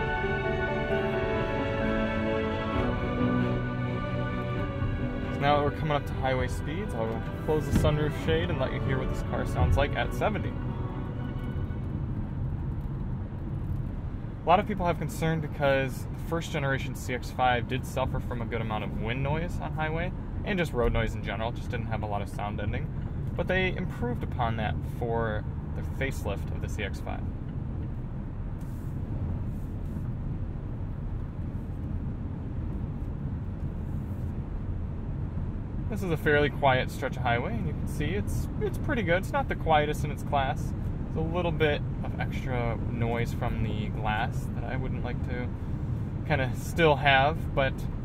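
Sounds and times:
music playing: 0.0s - 12.7s
road and wind noise in car: 0.0s - 48.0s.

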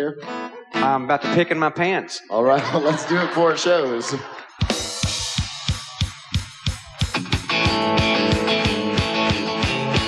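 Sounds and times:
electric guitar chords: 0.0s - 1.6s, 6.9s - 10.0s
drum kit with cymbals: 4.6s - 10.0s.

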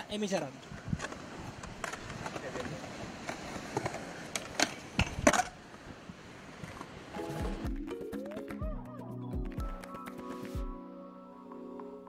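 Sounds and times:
skateboard wheels rolling on concrete: 0.0s - 8.6s
skateboard clacking on concrete: 1.0s - 5.8s
music with held tones: 7.2s - 12.0s.

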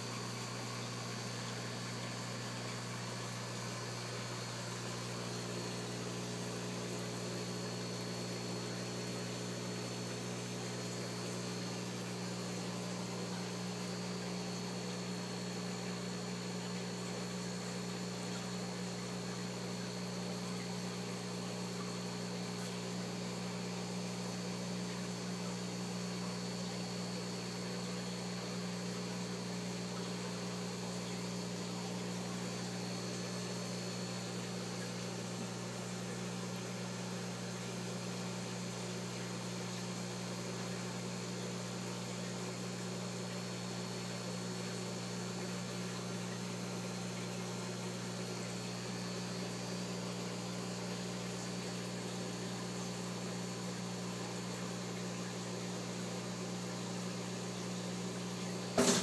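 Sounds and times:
aquarium pumps humming and hissing: 0.0s - 59.0s.

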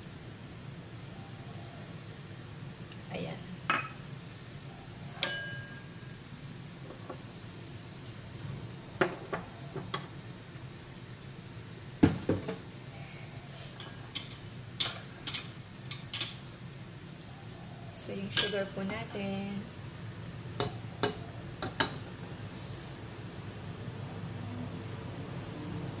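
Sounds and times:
metal ramekins clinking: 5.2s - 5.8s, 18.3s - 18.8s.

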